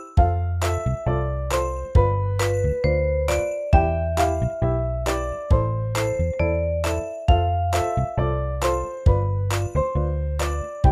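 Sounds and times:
gentle bell-like melody: 0:00.0 - 0:10.9
bass notes: 0:00.2 - 0:10.9.

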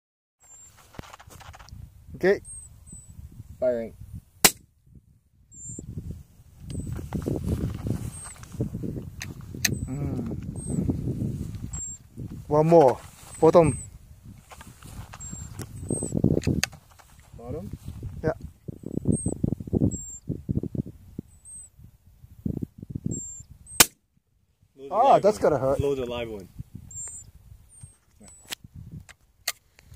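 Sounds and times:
short high chirps: 0:05.5 - 0:05.9, 0:06.7 - 0:07.0, 0:08.0 - 0:08.4, 0:09.6 - 0:11.0, 0:11.6 - 0:12.1, 0:15.1 - 0:16.2, 0:18.8 - 0:20.3, 0:21.3 - 0:21.8, 0:23.1 - 0:23.8, 0:26.9 - 0:28.5
low rustle: 0:06.0 - 0:09.6, 0:10.2 - 0:16.0.

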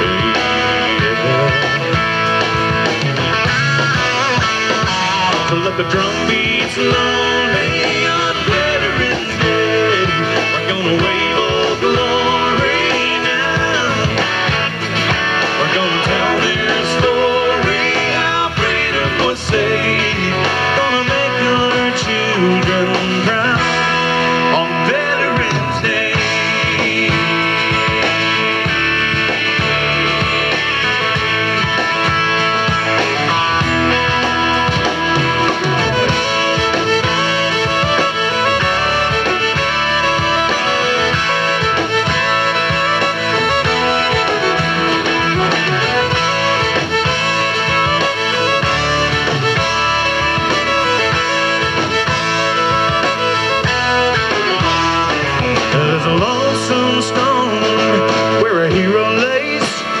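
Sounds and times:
country-rock band playing: 0:00.0 - 1:00.0
fiddle lead line: 0:00.0 - 1:00.0.

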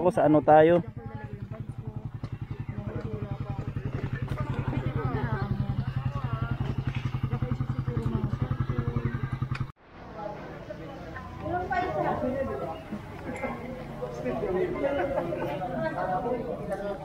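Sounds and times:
motorcycle engine idling: 0:00.0 - 0:09.8
faint voices chattering: 0:00.0 - 0:17.0.

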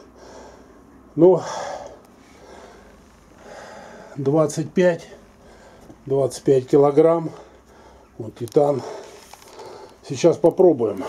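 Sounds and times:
man breathing softly: 0:00.0 - 0:04.2, 0:05.0 - 0:06.0, 0:07.2 - 0:10.1.

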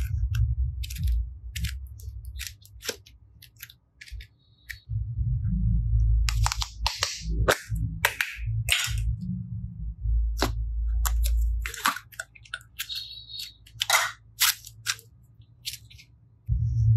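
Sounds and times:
sticky clay clicks and crackles: 0:00.0 - 0:04.9, 0:10.4 - 0:16.2.

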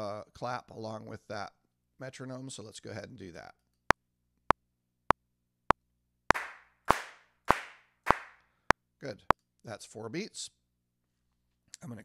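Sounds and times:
sampled handclaps: 0:06.3 - 0:08.4.

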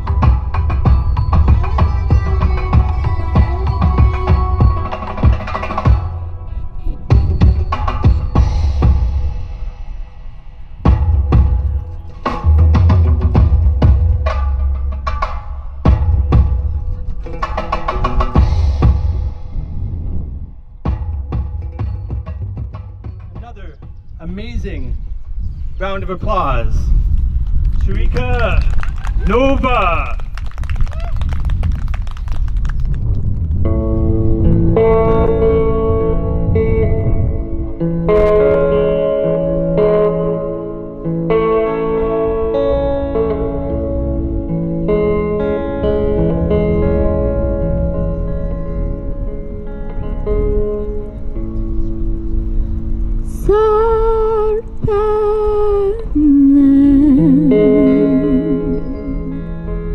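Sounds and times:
electric guitar slow chords: 0:00.0 - 0:22.2, 0:33.2 - 0:59.9
woman singing with vibrato: 0:01.5 - 0:05.6, 0:53.3 - 0:59.9.

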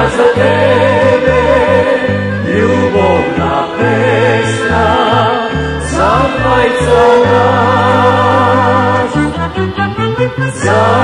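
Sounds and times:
folk band playing: 0:00.0 - 0:11.0.

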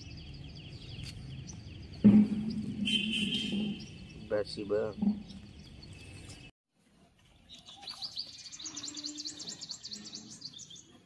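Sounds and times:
small birds chirping: 0:00.0 - 0:06.5, 0:07.2 - 0:11.0.

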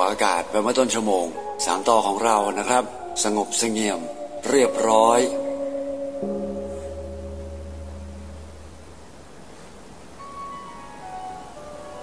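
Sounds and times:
higher chime notes: 0:03.0 - 0:09.1
deep ringing chime: 0:03.0 - 0:09.2.

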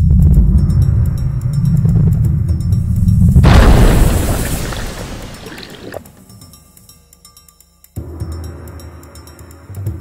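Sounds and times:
deep rumbling: 0:00.0 - 0:06.0
rushing splash: 0:03.4 - 0:06.1.

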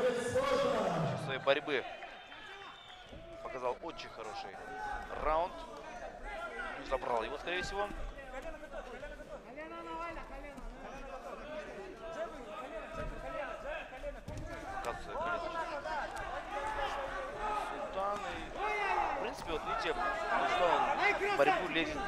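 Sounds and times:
men talking: 0:00.0 - 0:22.0.

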